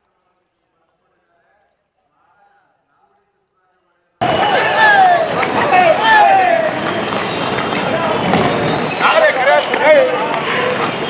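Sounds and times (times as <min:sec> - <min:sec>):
crowd noise: 0:04.2 - 0:11.0
horse hooves clopping on road: 0:04.2 - 0:11.0.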